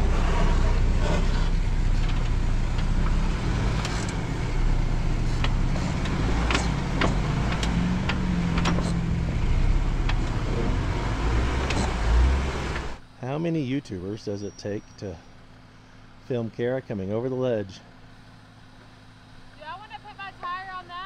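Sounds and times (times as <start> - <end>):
low engine rumble: 0.0 - 21.0.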